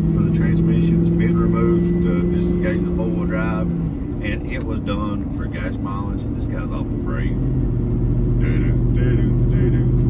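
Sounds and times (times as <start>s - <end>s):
engine and road noise in car: 0.0s - 10.0s.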